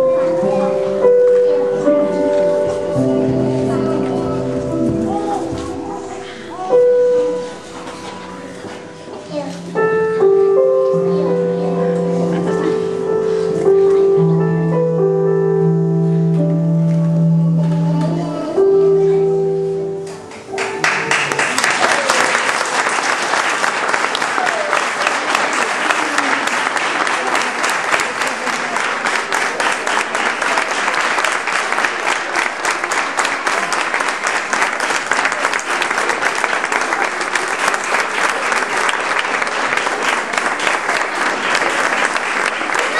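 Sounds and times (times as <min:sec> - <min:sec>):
audience applauding: 0:20.1 - 0:42.9.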